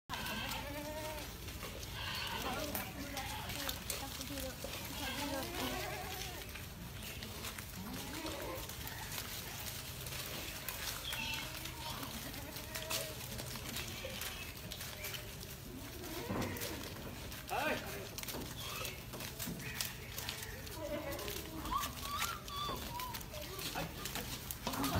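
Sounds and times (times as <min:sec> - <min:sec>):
goats bleating: 0:00.1 - 0:06.8, 0:07.4 - 0:24.9.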